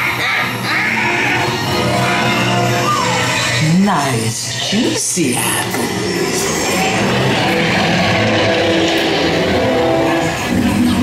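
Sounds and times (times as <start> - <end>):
soundtrack music with held chords: 0.0 - 4.0
ride car running along track: 6.3 - 11.0.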